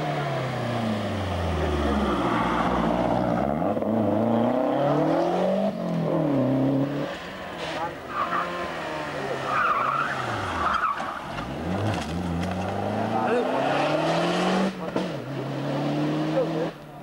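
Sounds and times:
rally car engines revving: 0.0 - 17.0.

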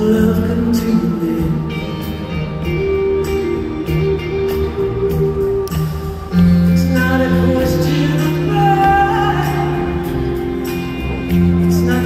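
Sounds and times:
live band playing slow pop song: 0.0 - 12.0.

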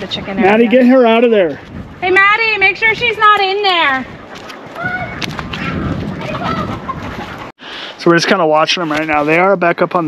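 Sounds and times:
chickens clucking: 4.2 - 8.4.

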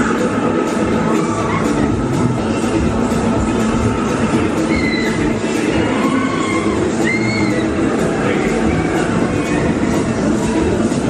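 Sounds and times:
high-pitched shriek: 4.6 - 7.8.

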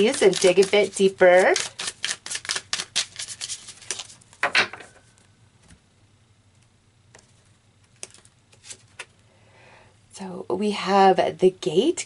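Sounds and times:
playing cards clicking: 1.6 - 4.1, 7.9 - 9.1.

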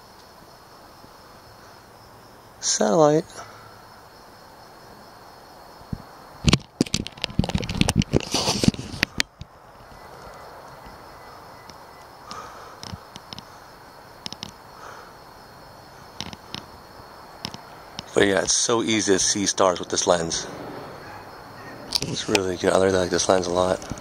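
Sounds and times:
crickets chirping: 0.0 - 24.0
rapid loud clicks and crackles: 6.4 - 9.5, 14.2 - 14.6, 23.3 - 24.0.

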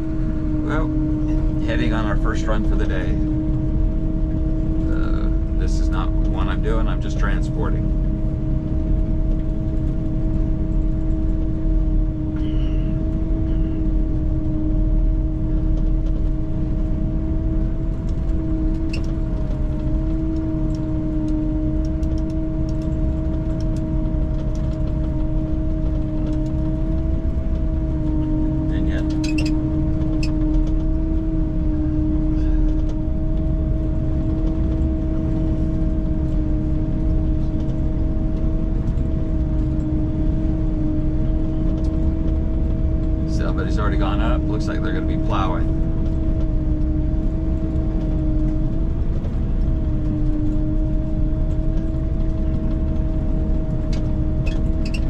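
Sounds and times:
snowcat engine and tracks: 0.0 - 55.0.

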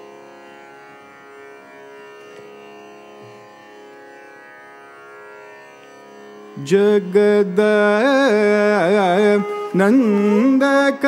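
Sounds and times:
man singing long notes: 6.6 - 11.0.

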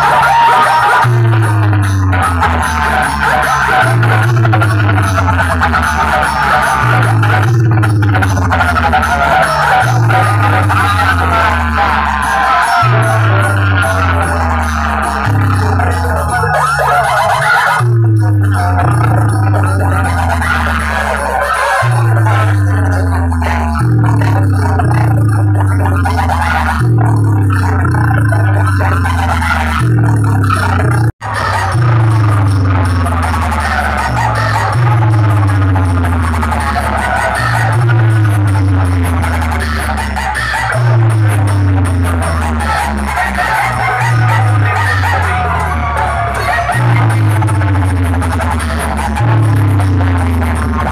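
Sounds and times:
deep sliding bass notes: 0.0 - 50.9
loud dance music from speakers: 0.0 - 50.9.

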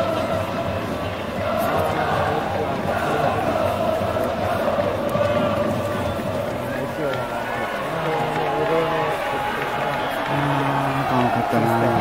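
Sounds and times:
crowd singing held notes: 0.0 - 12.0
crowd voices calling out: 0.0 - 12.0.

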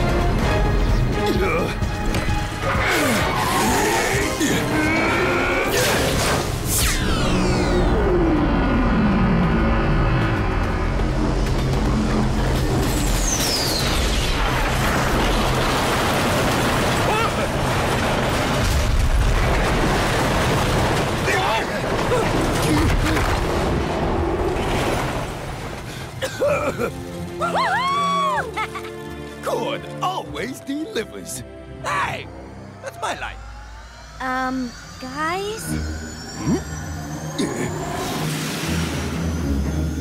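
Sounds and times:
dramatic background music: 0.0 - 40.0.

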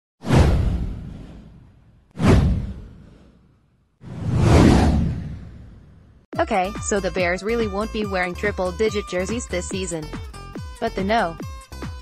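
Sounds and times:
downward whoosh: 4.0 - 5.9
deep rumble: 4.0 - 6.2.

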